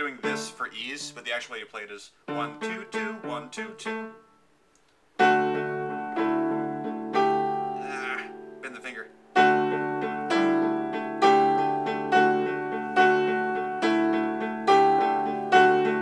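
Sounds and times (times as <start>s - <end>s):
slow piano chords: 5.2s - 16.0s.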